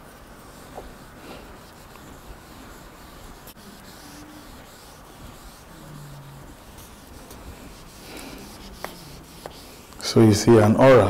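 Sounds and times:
marker rubbing on flip chart: 0:00.0 - 0:10.1.

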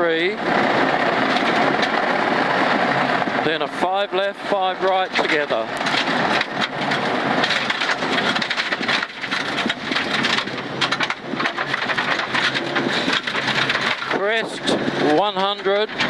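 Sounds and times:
car engine running: 0:00.0 - 0:16.0
loud tyre noise: 0:00.0 - 0:16.0
stones hitting car underbody: 0:05.1 - 0:14.2.

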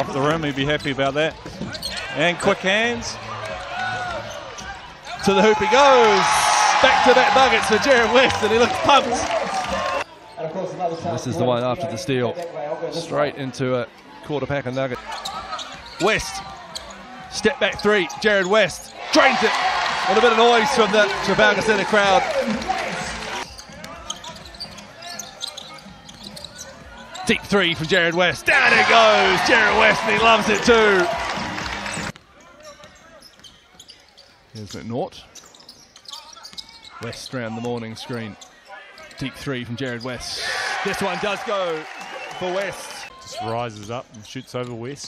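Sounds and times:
indoor arena noise: 0:00.0 - 0:45.0
shoe squeaks: 0:00.6 - 0:02.2, 0:03.3 - 0:05.4, 0:13.9 - 0:19.0, 0:23.4 - 0:28.9, 0:31.8 - 0:40.3, 0:41.8 - 0:45.0
crowd chatter: 0:01.5 - 0:34.1.

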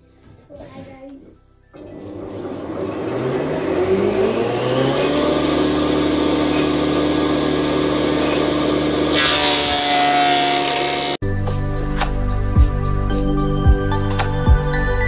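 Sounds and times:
hissing wood cut: 0:01.8 - 0:11.2
planer motor whine: 0:01.8 - 0:11.2.

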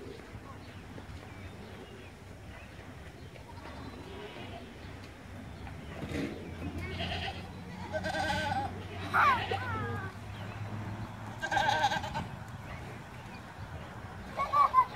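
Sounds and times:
goats bleating: 0:06.7 - 0:10.2, 0:11.3 - 0:12.3.

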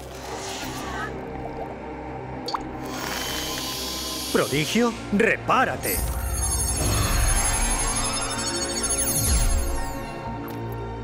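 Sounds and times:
dramatic score music: 0:00.0 - 0:11.0
magical shimmering sound effect: 0:05.9 - 0:10.2.

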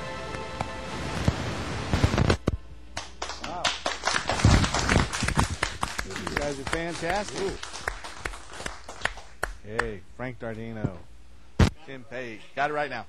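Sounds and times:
people clapping: 0:03.0 - 0:10.0.

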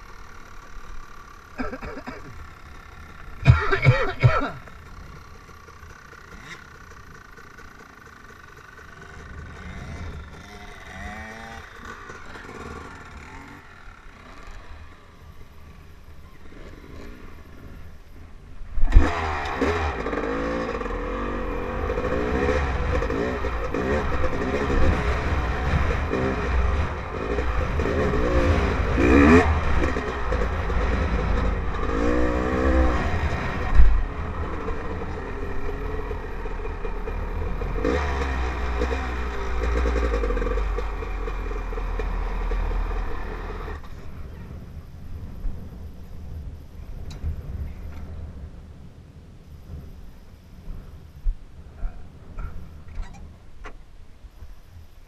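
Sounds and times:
dirt bike engine revving: 0:00.0 - 0:17.9, 0:18.8 - 0:44.0
wind rumble on microphone: 0:43.8 - 0:55.0.

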